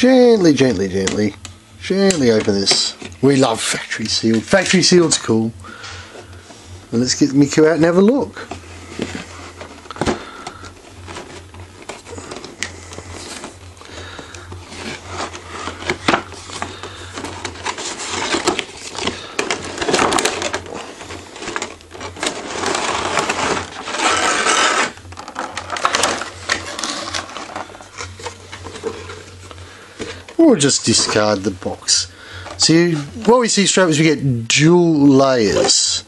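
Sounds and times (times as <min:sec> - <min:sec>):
cardboard and plastic rustling: 0:00.0 - 0:36.0.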